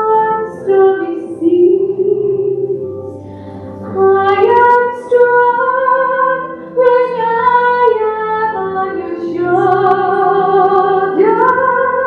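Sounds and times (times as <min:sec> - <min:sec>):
soft low accompaniment: 0:00.0 - 0:12.0
woman singing slow song: 0:03.9 - 0:12.0.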